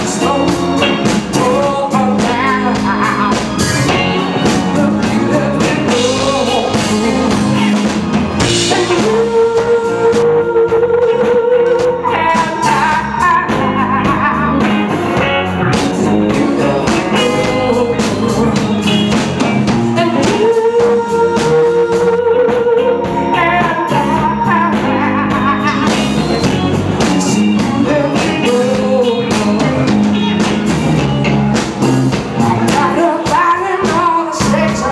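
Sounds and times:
woman singing: 0:00.0 - 0:19.3, 0:19.9 - 0:30.6, 0:32.4 - 0:34.9
drums: 0:00.0 - 0:34.9
electric guitar: 0:00.0 - 0:34.9.

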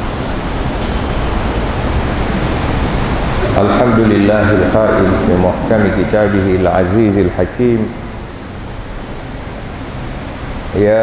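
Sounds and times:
steady microphone hiss: 0:00.0 - 0:11.0.

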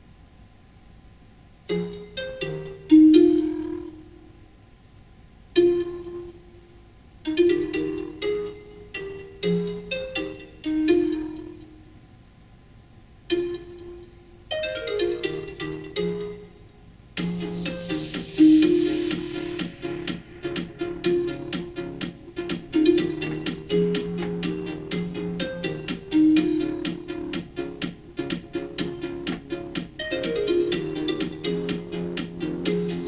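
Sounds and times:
alarm tune of plucked-string notes: 0:01.7 - 0:04.3, 0:05.6 - 0:06.6, 0:07.3 - 0:11.8, 0:13.3 - 0:16.6, 0:17.2 - 0:33.0.

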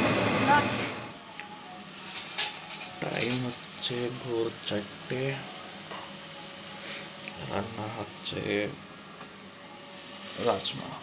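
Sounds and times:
onions sizzling in hot oil: 0:00.0 - 0:11.0.

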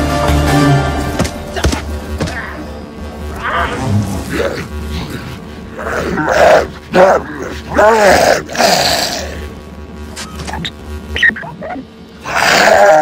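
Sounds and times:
low steady music: 0:00.0 - 0:07.4.

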